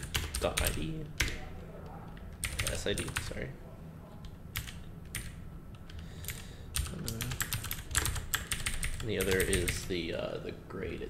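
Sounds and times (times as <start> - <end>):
computer keyboard typing: 0.0 - 1.4, 2.1 - 3.4, 4.2 - 9.9.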